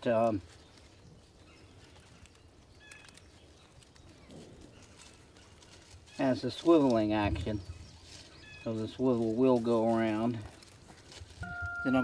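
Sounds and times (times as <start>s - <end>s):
wire cable clicking and rustling: 0.0s - 7.5s, 9.4s - 12.0s.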